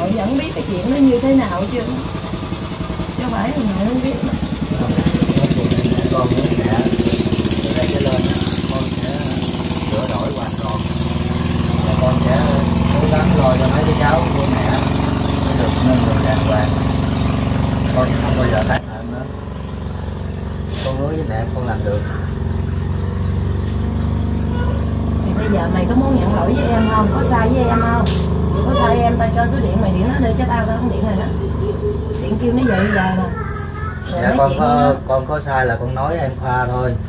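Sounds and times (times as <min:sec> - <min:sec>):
low motor hum: 0:00.0 - 0:37.0
small engine idling: 0:00.0 - 0:37.0.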